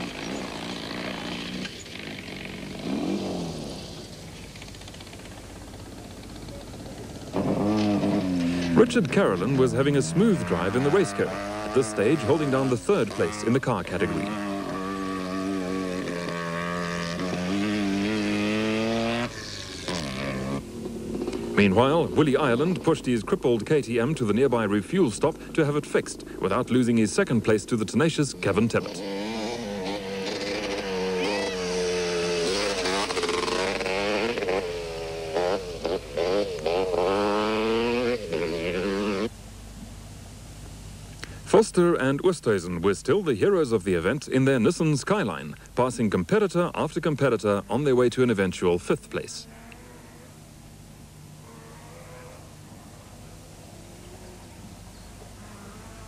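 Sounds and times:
motorcycle engine revving: 0.0 - 39.4.

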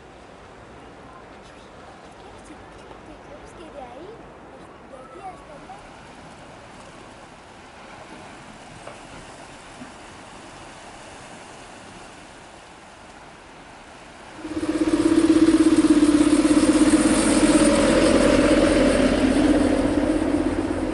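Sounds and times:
faint sea ambience: 0.0 - 20.9
tourist train engine droning: 14.2 - 20.9.

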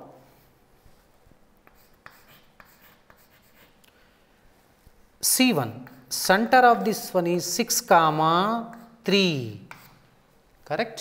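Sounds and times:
chalk scratching on blackboard: 1.6 - 3.8, 5.8 - 6.3, 8.6 - 10.1
chalk tapping: 1.6 - 3.8, 8.6 - 9.0, 9.6 - 10.1.

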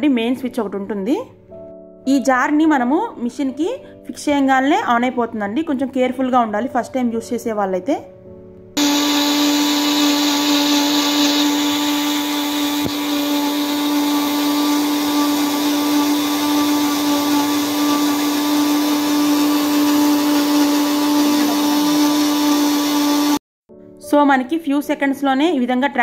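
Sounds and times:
mixer grinder motor humming: 8.8 - 23.4.

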